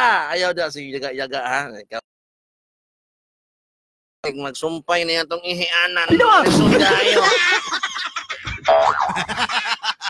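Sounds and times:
broadcast talk: 0:04.2 - 0:10.0.

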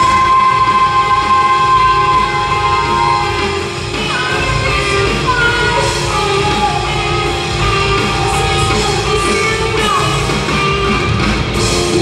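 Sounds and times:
worship band playing: 0:00.0 - 0:12.0.

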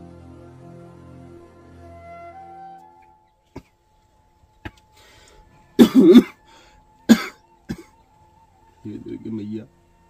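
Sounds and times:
person coughing hard: 0:05.8 - 0:06.4, 0:07.1 - 0:08.0.

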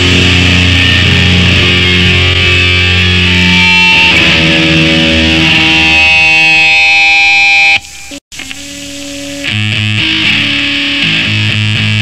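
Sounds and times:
distorted hardcore band music: 0:00.0 - 0:12.0
sustained guitar note: 0:00.0 - 0:12.0.

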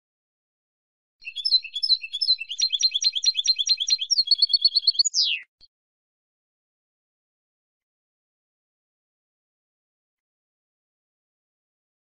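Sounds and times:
goldfinch twittering: 0:01.2 - 0:05.5.

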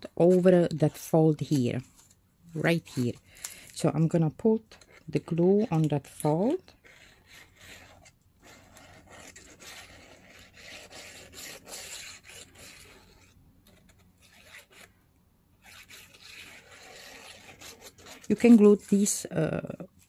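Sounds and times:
paper pages rustling: 0:01.4 - 0:03.8.

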